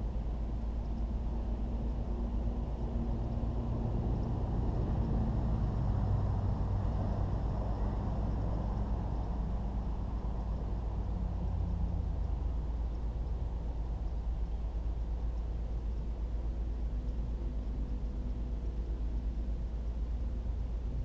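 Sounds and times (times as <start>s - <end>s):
faint hum: 0.0s - 21.0s.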